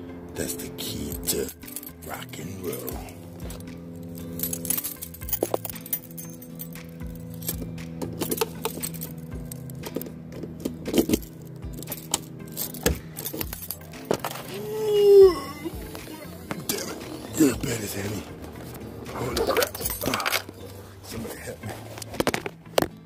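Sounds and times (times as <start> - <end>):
background music: 0.0 - 23.0
keys jangling: 1.2 - 20.8.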